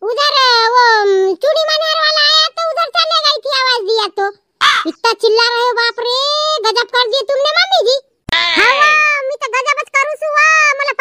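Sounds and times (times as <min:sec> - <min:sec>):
high-pitched cartoon voice talking: 0:00.0 - 0:11.0.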